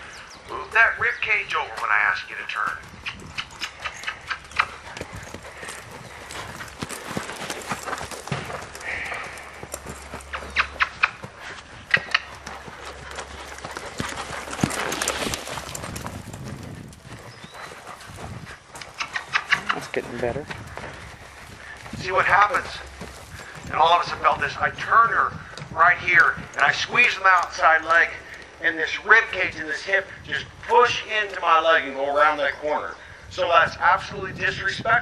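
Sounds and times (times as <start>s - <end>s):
horse hoofbeats on soft dirt: 1.1s - 30.0s.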